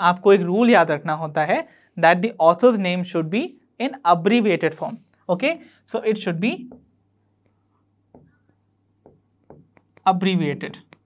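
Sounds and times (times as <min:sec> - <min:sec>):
marker writing on whiteboard: 0:06.1 - 0:11.0.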